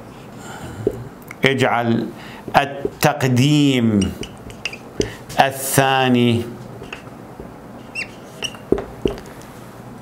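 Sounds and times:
whiteboard marker squeaking: 3.9 - 5.2, 6.8 - 7.1, 7.8 - 9.2.

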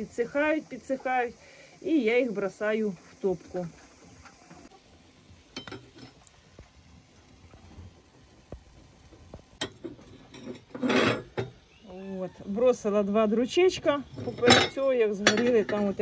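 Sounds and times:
logs clattering into stove: 5.5 - 6.3, 9.1 - 11.6, 14.1 - 16.0
metallic clinks of stove rings: 5.5 - 6.3, 9.6 - 11.6, 14.2 - 16.0.

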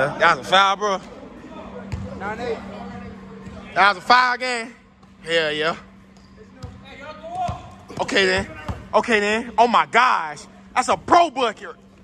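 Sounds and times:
steady low hum: 0.0 - 12.0
basketball bounce on gym floor: 1.9 - 2.2.

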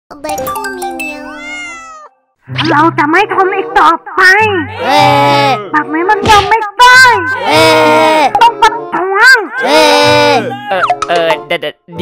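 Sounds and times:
background music: 0.1 - 12.0.

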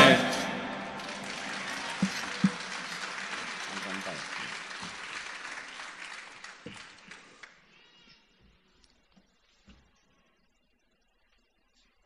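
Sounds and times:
audience applauding: 0.0 - 7.7.

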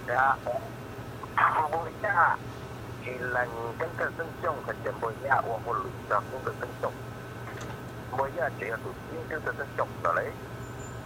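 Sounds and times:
person talking quickly: 0.0 - 2.4, 3.0 - 7.0, 8.1 - 10.4
steady low hum: 0.0 - 11.0.

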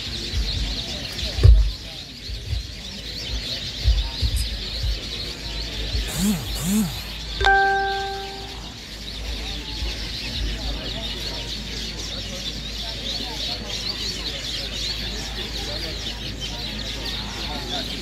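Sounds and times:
birds chirping: 6.0 - 9.2
electronic tone: 6.1 - 8.6
crowd murmur: 11.0 - 18.0.

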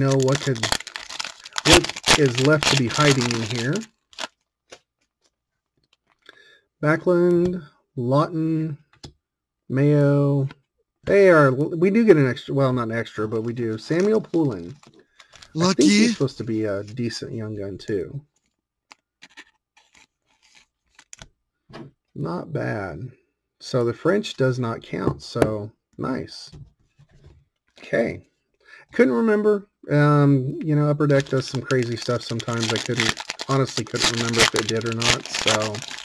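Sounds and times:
trading cards clicking and crinkling: 0.0 - 6.2, 13.9 - 16.1, 18.4 - 21.3, 31.1 - 36.0.

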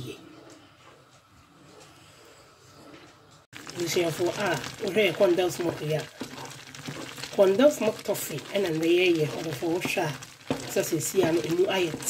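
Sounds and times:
wooden spoon stirring pan: 3.5 - 12.0
person speaking: 7.3 - 12.0.

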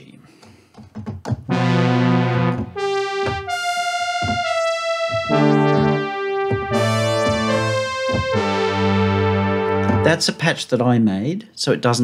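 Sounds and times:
synthesizer chords and notes: 1.5 - 10.5.

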